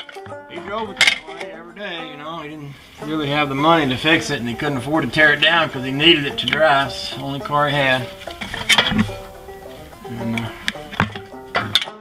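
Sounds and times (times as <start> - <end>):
metal brake parts clinking: 0.9 - 1.5.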